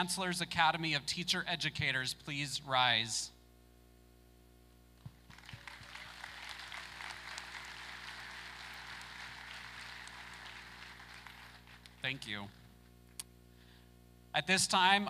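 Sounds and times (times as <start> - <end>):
audience applauding: 5.1 - 12.1.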